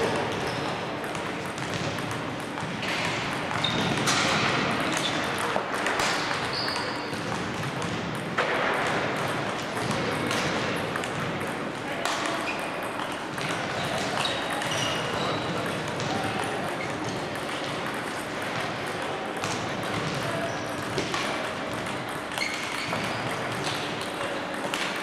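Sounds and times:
table tennis balls clicking: 0:00.0 - 0:25.0.

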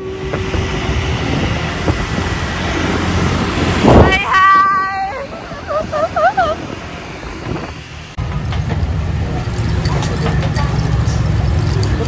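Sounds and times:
low traffic rumble: 0:00.0 - 0:12.0.

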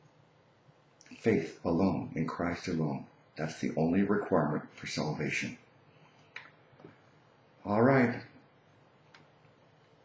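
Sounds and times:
man speaking: 0:01.0 - 0:05.7, 0:07.6 - 0:08.4.

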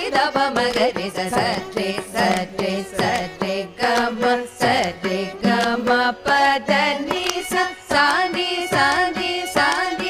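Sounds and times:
two women singing together: 0:00.0 - 0:10.0.

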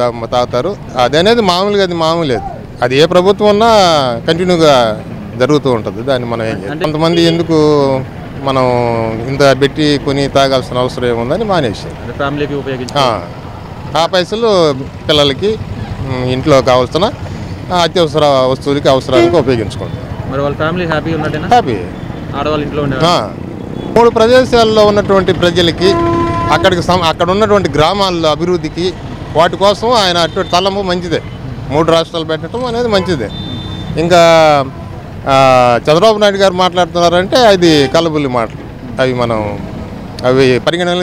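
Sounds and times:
man speaking: 0:00.0 - 0:33.4, 0:34.0 - 0:41.0
man talking: 0:00.0 - 0:33.4, 0:34.0 - 0:41.0
traffic noise: 0:00.0 - 0:41.0.

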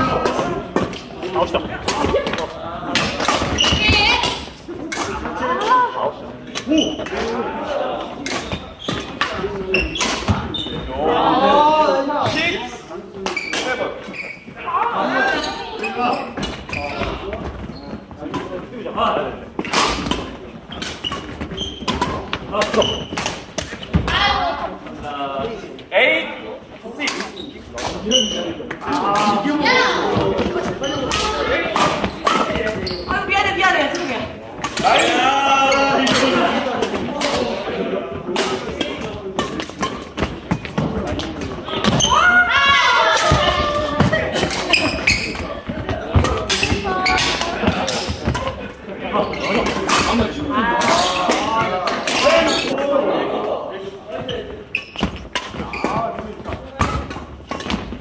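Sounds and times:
people talking and calling out: 0:00.0 - 0:58.0
badminton hits and thuds: 0:08.2 - 0:10.5, 0:19.6 - 0:24.2, 0:30.1 - 0:32.8, 0:43.0 - 0:48.6, 0:54.9 - 0:58.0
racket hitting shuttlecock: 0:43.1 - 0:48.6.

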